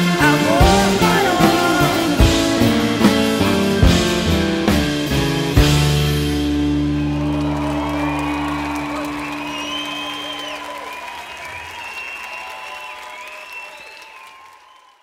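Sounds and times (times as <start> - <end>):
band chord ringing: 0.0 - 10.9
audience applauding and cheering: 6.1 - 15.0.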